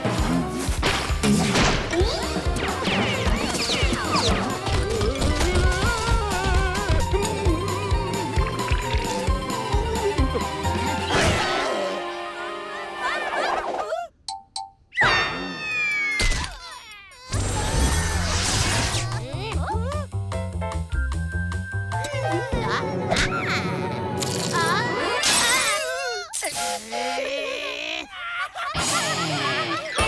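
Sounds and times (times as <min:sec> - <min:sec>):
cartoon background music: 0:00.0 - 0:16.0, 0:17.2 - 0:27.6
slapstick crash and impact effects: 0:00.7 - 0:02.0.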